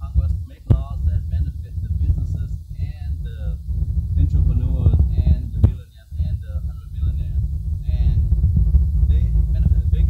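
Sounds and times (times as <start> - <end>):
person talking: 0.0 - 3.6, 4.2 - 8.3, 9.1 - 10.0
steady low rumble: 0.0 - 10.0.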